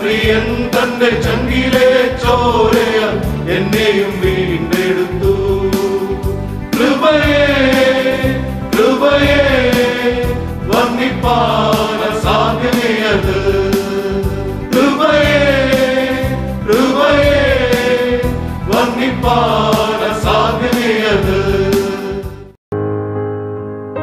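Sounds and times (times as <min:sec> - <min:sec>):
men's choir singing a hymn: 0:00.0 - 0:22.4
keyboard accompaniment: 0:00.0 - 0:24.0.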